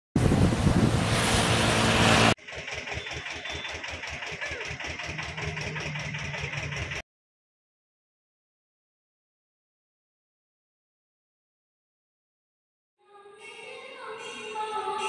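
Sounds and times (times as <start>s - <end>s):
loud rushing noise: 0.2s - 2.4s
engine running with rapid pulse: 0.2s - 7.0s.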